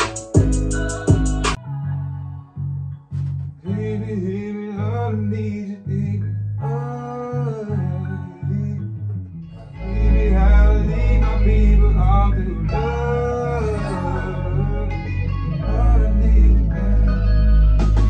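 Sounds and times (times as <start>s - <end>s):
guitar-led beat: 0.0s - 1.6s, 3.0s - 4.1s, 9.0s - 18.0s
man singing: 0.0s - 1.6s, 3.6s - 8.9s, 9.6s - 17.8s
deep bass: 0.0s - 18.0s.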